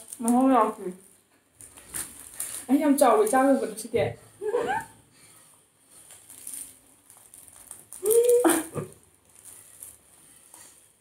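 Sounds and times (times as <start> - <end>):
wrapper crinkling: 0.0 - 3.8, 5.9 - 11.0.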